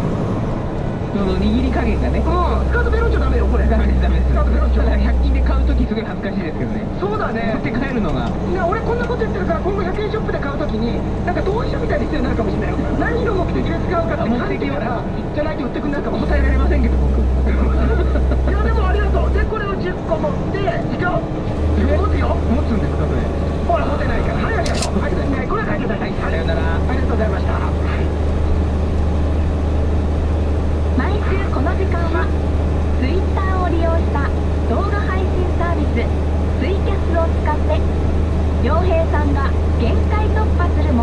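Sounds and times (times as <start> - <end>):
truck engine drone: 0.0 - 41.0
radio talk: 1.1 - 28.3, 31.0 - 41.0.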